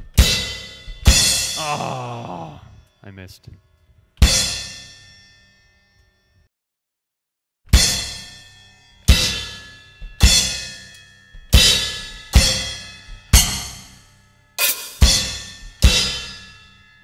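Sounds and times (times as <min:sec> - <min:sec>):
choked crash cymbal hits: 0:14.6 - 0:16.3.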